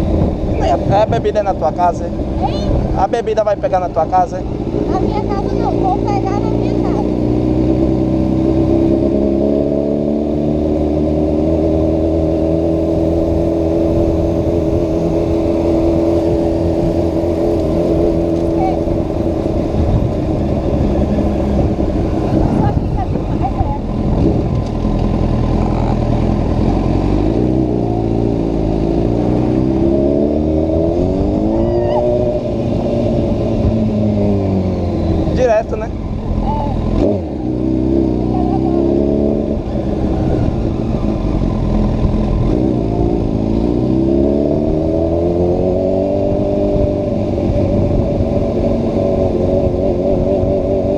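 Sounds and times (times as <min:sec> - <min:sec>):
motorcycle engine revving: 0:00.0 - 0:50.9.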